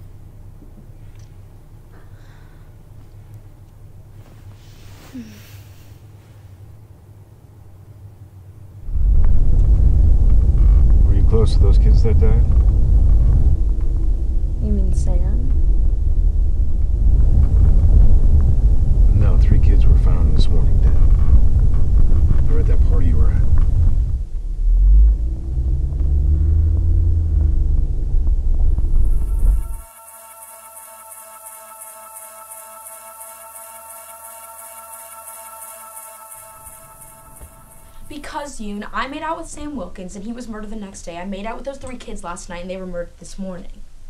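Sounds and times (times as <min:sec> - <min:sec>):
faint room hum: 0:00.0 - 0:25.8
car engine rumble from inside cabin: 0:00.0 - 0:29.6.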